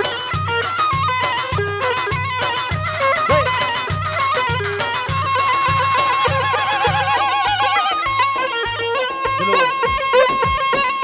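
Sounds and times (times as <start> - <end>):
drum beat: 0.0 - 7.5, 9.3 - 11.0
wind instrument trilling melody: 0.0 - 11.0.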